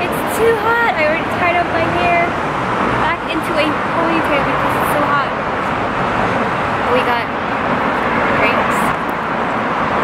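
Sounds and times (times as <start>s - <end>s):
traffic passing on road: 0.0s - 10.0s.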